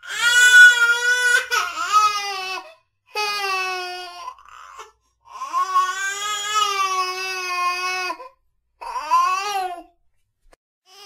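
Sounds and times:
baby crying: 0.0 - 9.9.

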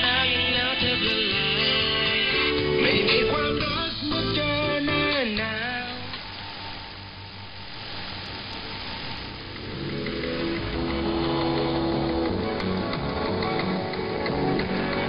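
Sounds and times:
radio music: 0.0 - 15.0
radio static hiss: 0.0 - 15.0.

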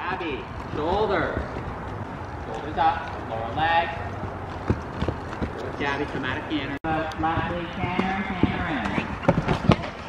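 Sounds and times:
horse hoofbeats on sand: 0.0 - 10.0.

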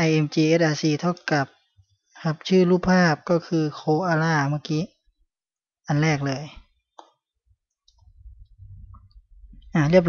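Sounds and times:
faint low rumble: 7.9 - 10.0.

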